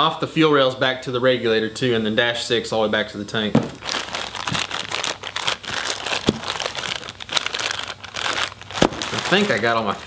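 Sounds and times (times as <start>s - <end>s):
plastic bags crinkling: 3.6s - 10.0s.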